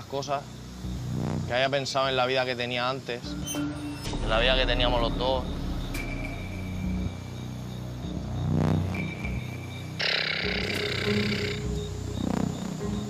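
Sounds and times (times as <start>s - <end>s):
low dramatic drone: 3.3s - 13.0s.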